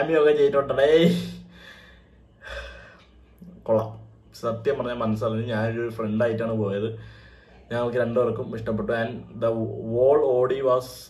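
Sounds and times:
man speaking: 0:00.0 - 0:01.5, 0:03.4 - 0:07.0, 0:07.7 - 0:11.0
man's sharp breath: 0:01.5 - 0:03.2, 0:07.0 - 0:07.7.

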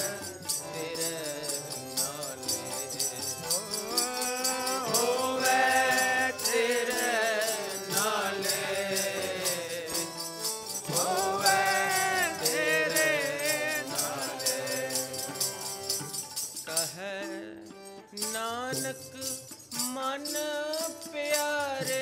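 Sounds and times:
man singing: 0:00.0 - 0:15.7, 0:16.6 - 0:22.0
jingling metallic beat: 0:00.0 - 0:17.3, 0:18.1 - 0:22.0
harmonium: 0:00.0 - 0:22.0.

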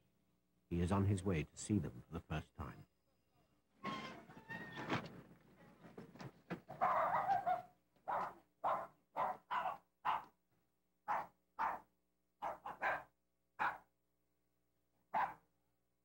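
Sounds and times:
small dog barking: 0:06.8 - 0:10.4, 0:11.1 - 0:13.9, 0:15.1 - 0:15.4.

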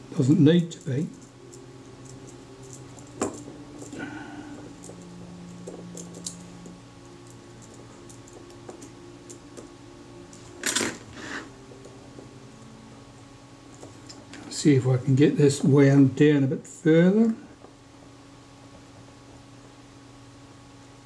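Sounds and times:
low hum: 0:00.0 - 0:21.0
tweezers ticking on metal parts: 0:00.4 - 0:10.6.

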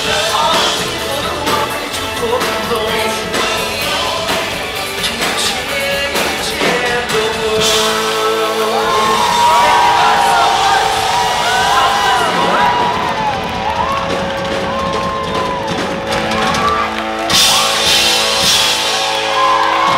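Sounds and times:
audience cheering and whooping: 0:08.4 - 0:19.9.

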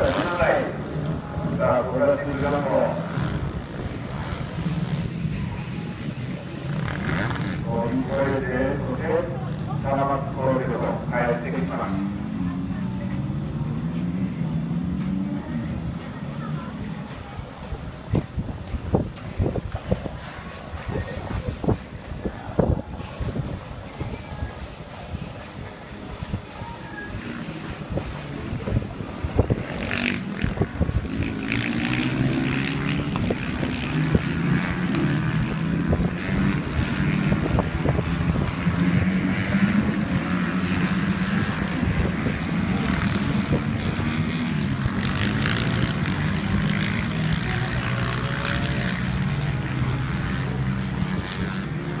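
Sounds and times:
motorcycle engines revving: 0:00.0 - 0:52.0.

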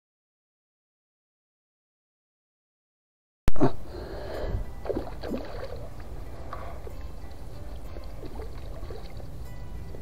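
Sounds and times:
water sloshing and splashing: 0:04.7 - 0:10.0.

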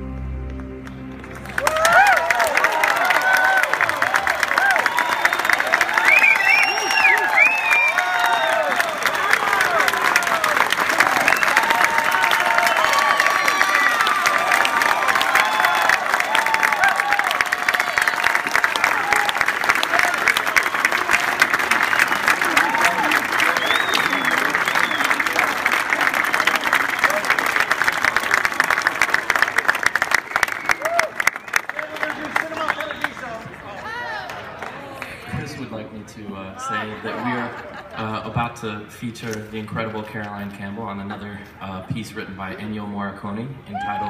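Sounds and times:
audience applauding: 0:00.0 - 0:35.6
cheers and shouts: 0:01.3 - 0:27.7, 0:30.5 - 0:35.0, 0:43.7 - 0:44.0.

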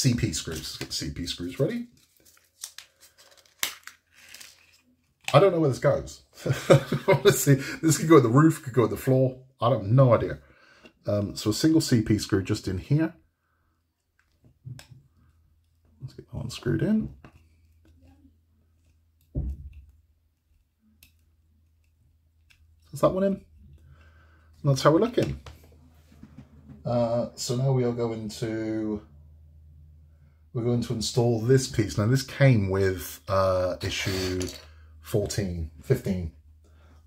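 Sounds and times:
person speaking: 0:00.0 - 0:02.0, 0:05.2 - 0:10.4, 0:24.6 - 0:29.2, 0:30.6 - 0:36.4.

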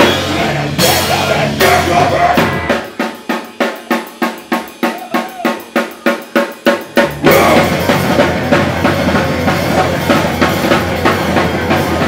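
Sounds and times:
rock band playing loudly: 0:00.0 - 0:12.0
drum kit hits: 0:06.6 - 0:12.0.

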